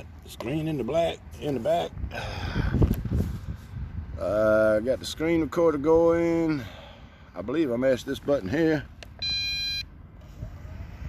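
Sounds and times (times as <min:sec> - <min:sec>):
steady electronic beep: 0:09.2 - 0:09.9.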